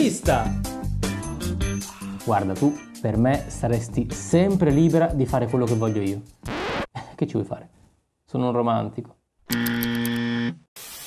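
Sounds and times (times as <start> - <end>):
electronic error buzzer: 6.5 - 6.9, 9.5 - 10.6.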